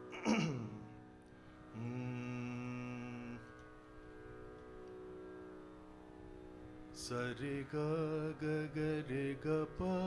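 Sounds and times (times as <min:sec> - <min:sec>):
man singing a steady note: 0:00.0 - 0:04.5, 0:06.7 - 0:10.0
faint steady drone: 0:00.0 - 0:10.0.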